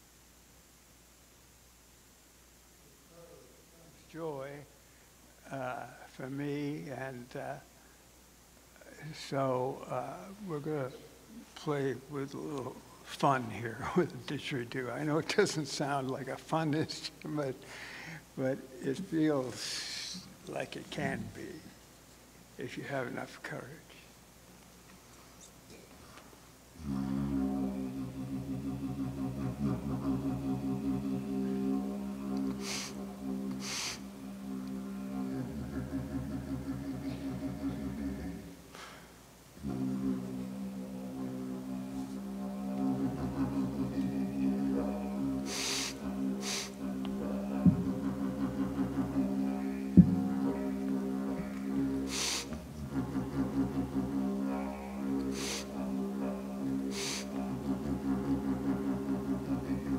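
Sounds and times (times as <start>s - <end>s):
didgeridoo drone: 26.8s - 38.6s, 39.6s - 59.9s
short hissy bursts: 32.6s - 34.1s, 45.5s - 46.8s, 52.1s - 52.6s, 55.3s - 55.7s, 56.9s - 57.3s.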